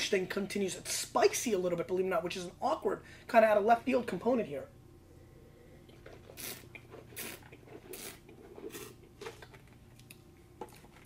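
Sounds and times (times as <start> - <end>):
person slurping wine: 5.9 - 9.0.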